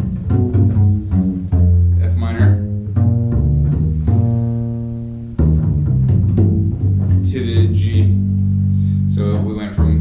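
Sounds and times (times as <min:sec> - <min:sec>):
double bass plucked: 0:00.0 - 0:10.0.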